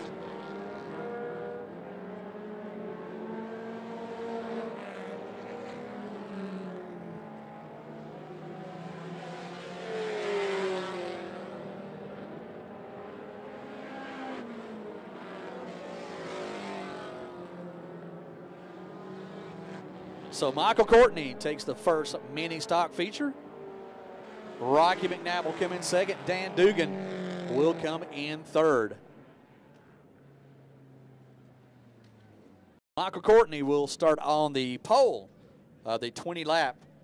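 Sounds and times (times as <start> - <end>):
race car engines: 0.0 - 37.0
car passing by: 9.0 - 11.6, 15.3 - 17.7, 24.0 - 28.1.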